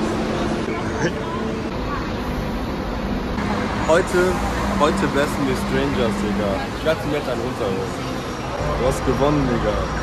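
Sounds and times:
road traffic rumble: 0.0s - 10.0s
man speaking: 3.9s - 8.0s.

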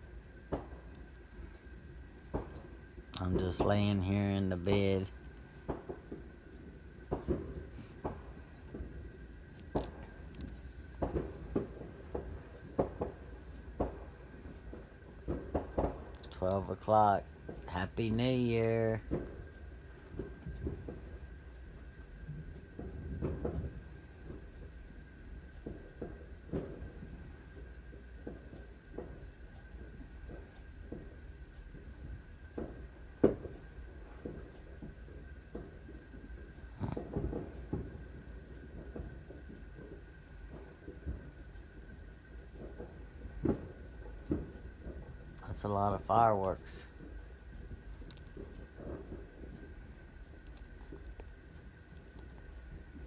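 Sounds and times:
muffled fireworks bangs and pops: 0.0s - 53.0s.

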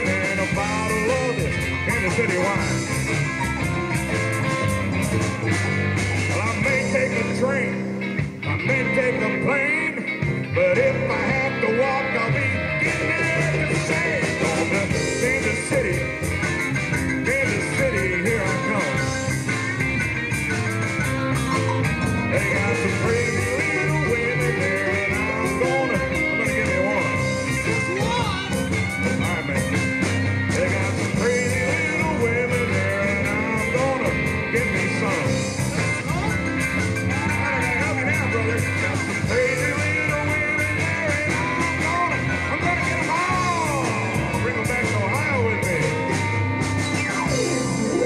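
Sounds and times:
lead electric guitar bent notes: 0.0s - 48.0s
live blues band: 0.0s - 48.0s.

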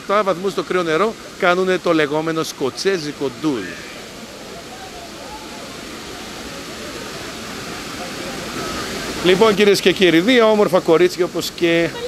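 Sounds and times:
waterfall pouring into pool: 0.0s - 12.0s
faint chatter of voices: 3.4s - 9.2s.

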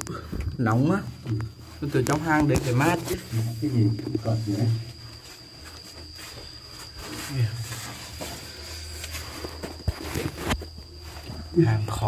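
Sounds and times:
soft scuffing and scraping: 0.6s - 12.0s.

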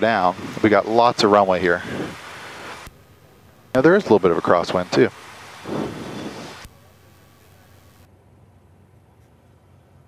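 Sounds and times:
headset intercom hiss: 3.8s - 8.1s.

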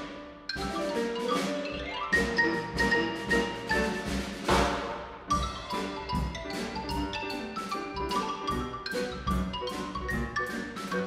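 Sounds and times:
ragtime trio playing: 0.0s - 11.0s
cymbal crash: 4.4s - 5.3s.

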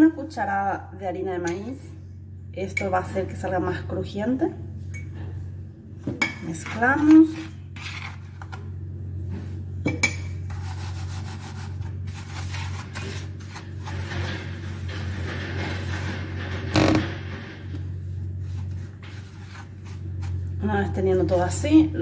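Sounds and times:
fork scraping crumbs in metal tray: 6.6s - 8.6s.

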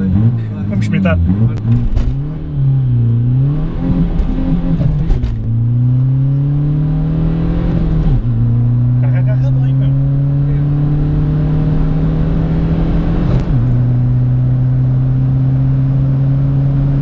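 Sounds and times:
diesel engine accelerating hard: 0.0s - 17.0s.

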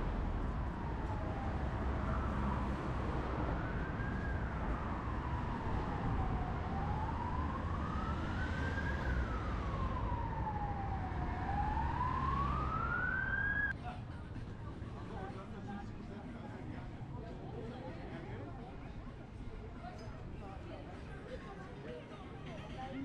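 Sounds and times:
road traffic rumble: 0.0s - 19.5s
emergency siren wailing: 0.1s - 13.7s.

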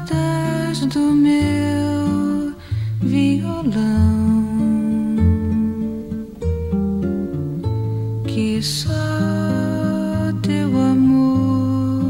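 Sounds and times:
acoustic guitar playing chords: 0.0s - 12.0s.

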